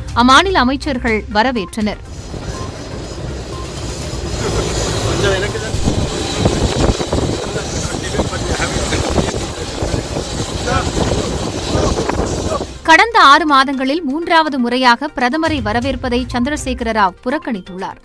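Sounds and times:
steady background hum: 2.0s - 12.9s
faint high whine: 2.1s - 12.8s
crowd talking indistinctly: 2.1s - 12.9s.

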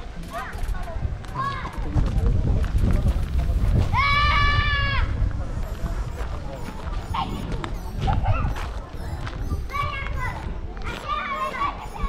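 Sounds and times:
child's high-pitched shout: 3.9s - 5.1s, 9.7s - 12.0s
small child calling: 7.0s - 12.0s.

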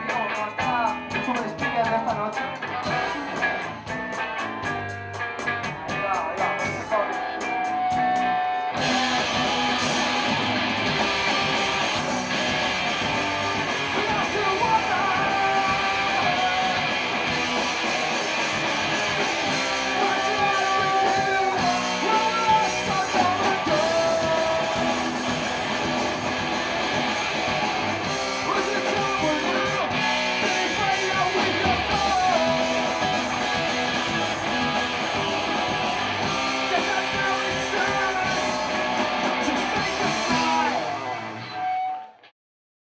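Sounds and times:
punk rock band playing: 0.0s - 42.3s.

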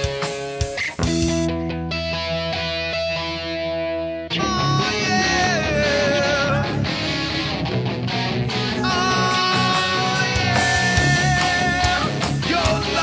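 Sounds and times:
hard rock band instrumental: 0.0s - 13.0s
lead guitar with string bends: 0.0s - 13.0s.

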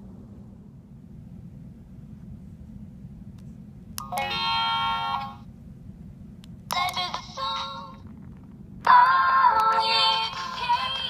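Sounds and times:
toy doll singing from small speaker: 6.7s - 8.0s, 8.9s - 11.0s.

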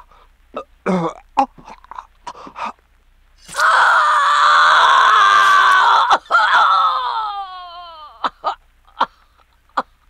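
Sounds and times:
person screaming: 3.5s - 8.2s
person crying out: 3.5s - 8.3s.

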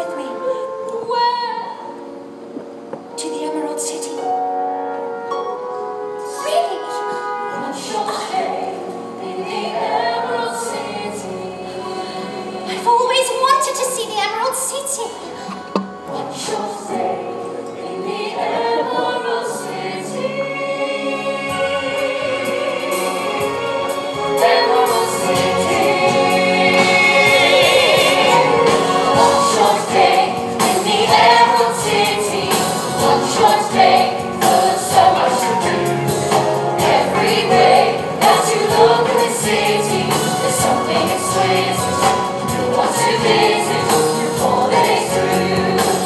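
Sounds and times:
instrumental accompaniment: 1.8s - 8.0s, 15.3s - 46.0s
ensemble singing in chorus: 6.9s - 12.9s, 15.2s - 46.0s.

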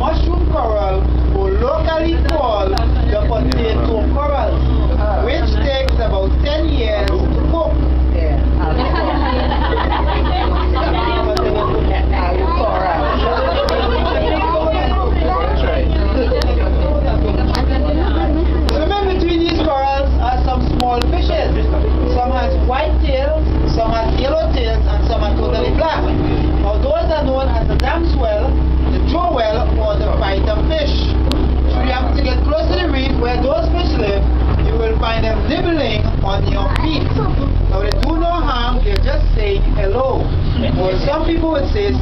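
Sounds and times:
boat engine droning: 0.0s - 42.0s
indistinct voices talking: 0.0s - 42.0s.

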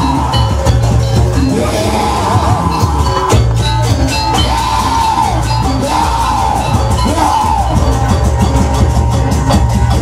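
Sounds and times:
driving drums: 0.0s - 10.0s
high bending melody line: 0.0s - 10.0s.

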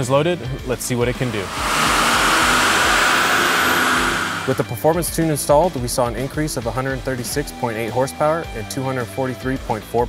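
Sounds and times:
faint high turbo whine: 0.8s - 5.0s
diesel engine running hard: 1.0s - 4.8s.

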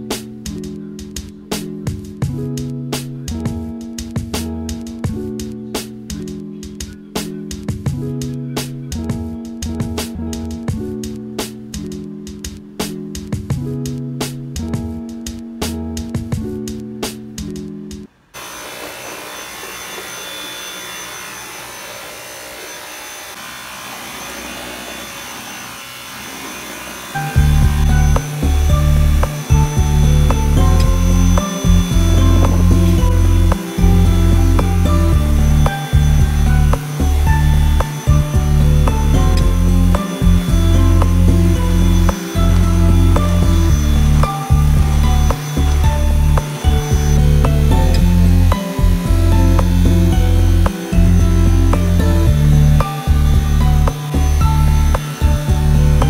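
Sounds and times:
music with heavy beat: 0.1s - 18.1s, 27.2s - 56.0s
vacuum cleaner running: 18.4s - 56.0s.

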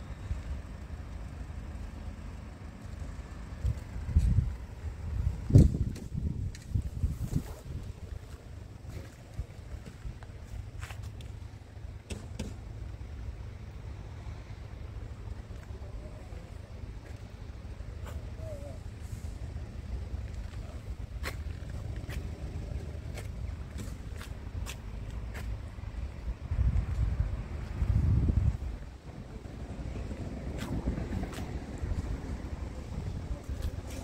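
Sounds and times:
wind buffeting microphone: 3.5s - 10.5s, 26.0s - 34.0s.

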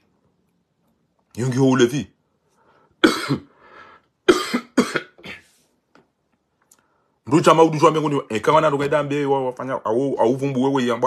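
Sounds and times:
man coughing: 3.0s - 3.6s, 4.2s - 5.5s.

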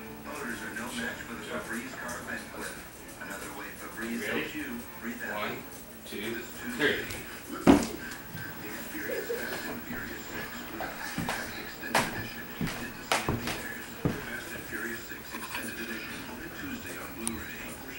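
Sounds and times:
television commercial speech: 0.2s - 17.9s.

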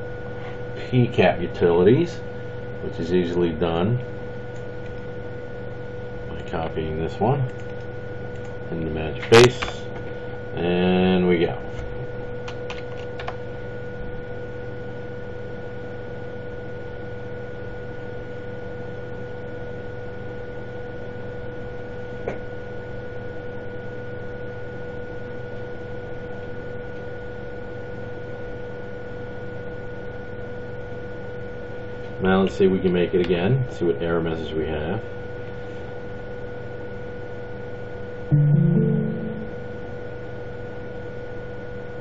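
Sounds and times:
electrical hum and hiss: 0.0s - 42.0s
high whining tones: 38.3s - 40.2s.

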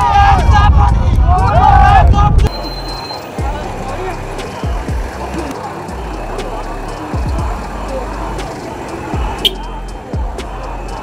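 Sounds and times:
crowd chatter: 0.0s - 11.0s
music with deep bass notes: 0.0s - 11.0s.

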